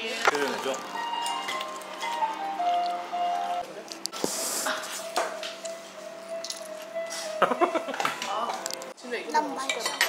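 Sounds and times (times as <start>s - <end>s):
background music steady note: 0.0s - 3.8s, 4.7s - 9.6s
dishes and cutlery clinking: 0.2s - 2.4s, 4.6s - 8.9s, 9.5s - 10.0s.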